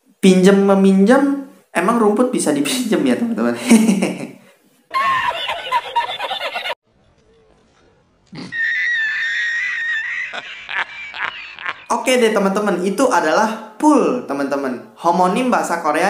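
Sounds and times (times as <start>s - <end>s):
man laughing: 3.6s - 6.8s, 8.4s - 11.9s.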